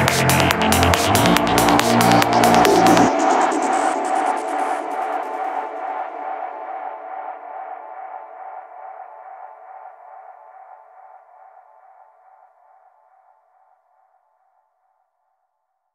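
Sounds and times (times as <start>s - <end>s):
sustained synth tone: 0.0s - 7.0s.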